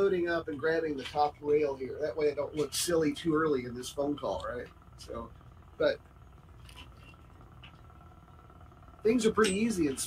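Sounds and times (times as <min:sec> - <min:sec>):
faint cabin hum: 0:00.0 - 0:10.0.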